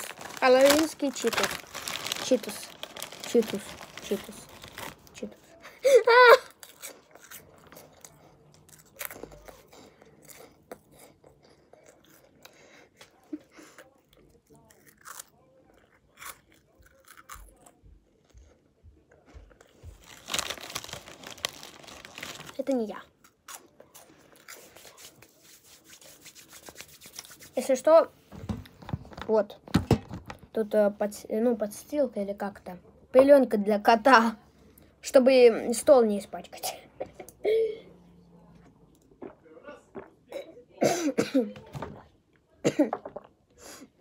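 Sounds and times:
snacks crunching while chewed: 6.5 - 25.2.

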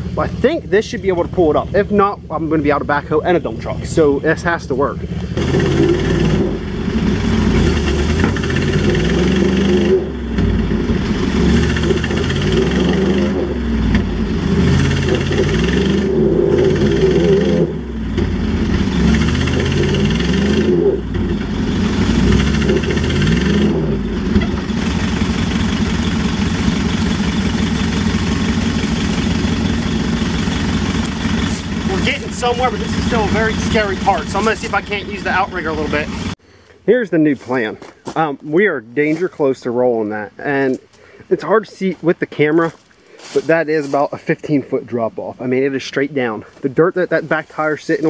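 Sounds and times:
engine revving under load: 0.0 - 36.4.

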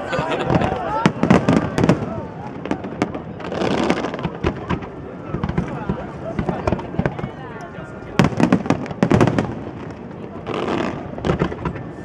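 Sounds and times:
fireworks bangs and crackles: 0.1 - 12.0.

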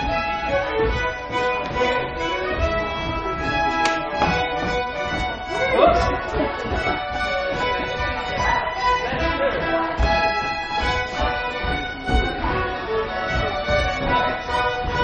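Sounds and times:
crowd voices: 0.0 - 15.0
folk band with fiddle: 0.0 - 15.0.

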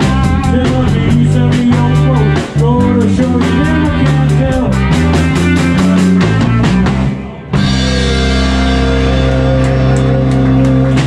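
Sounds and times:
bass guitar: 0.0 - 11.0
drum kit steady beat: 0.0 - 11.0
electric guitar: 0.0 - 11.0.

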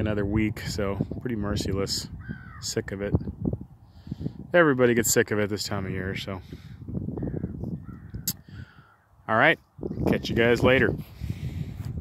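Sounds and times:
crow cawing: 2.2 - 2.6, 7.2 - 9.1
sharp click: 8.2 - 8.4.

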